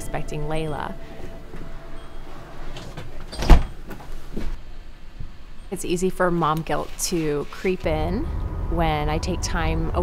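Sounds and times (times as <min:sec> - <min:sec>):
door shutting with heavy thud: 0:03.3 - 0:03.8.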